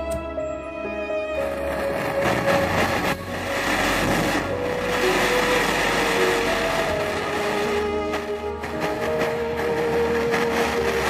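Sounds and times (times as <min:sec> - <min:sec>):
soft background music: 0:00.0 - 0:11.0
gas torch flame hissing: 0:01.4 - 0:11.0.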